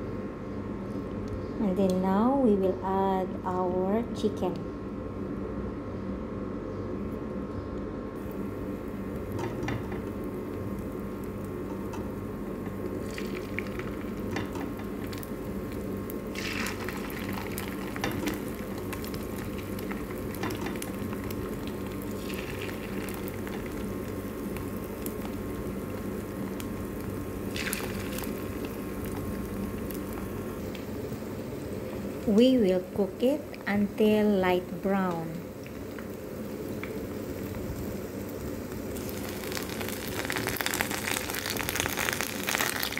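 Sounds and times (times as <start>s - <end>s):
low hum: 0.0s - 42.3s
chicken sizzling in hot oil: 8.2s - 32.3s, 34.6s - 42.9s.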